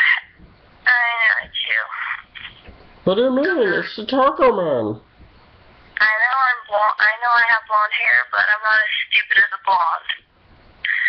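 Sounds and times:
voice through phone speaker: 0.0 - 0.3, 0.9 - 2.5, 6.0 - 10.2.

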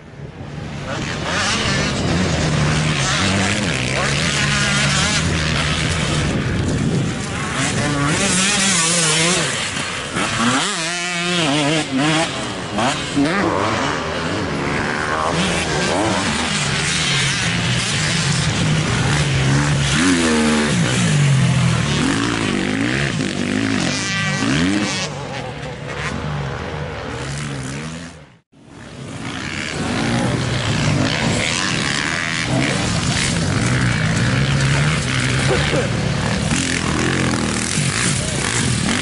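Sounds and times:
motorcycle engines revving: 0.0 - 39.0.

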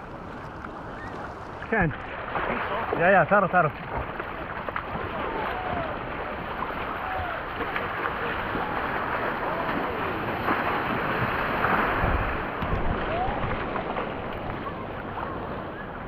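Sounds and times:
seawater splashing around surfboard: 0.0 - 16.0
wind buffeting microphone: 8.3 - 14.8.

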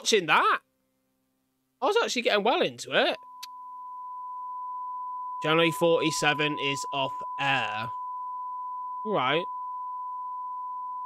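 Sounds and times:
steady test tone beep: 3.1 - 11.0.

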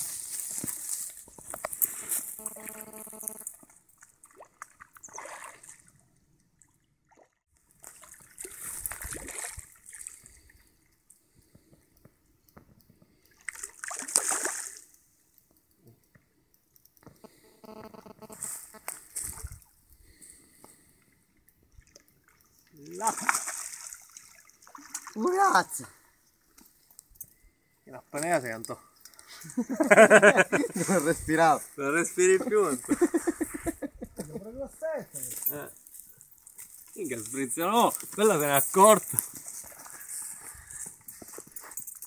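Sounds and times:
fish splashing in water: 13.3 - 14.9, 23.0 - 25.2.

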